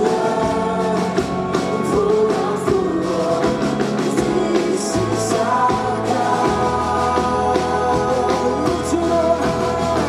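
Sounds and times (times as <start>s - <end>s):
group singing together: 0.0s - 10.0s
worship band playing: 0.0s - 10.0s.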